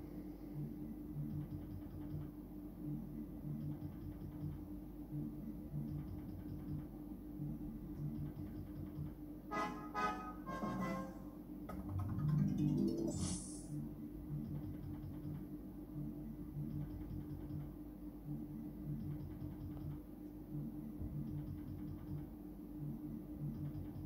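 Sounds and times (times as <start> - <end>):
slot machine game music: 9.5 - 13.7.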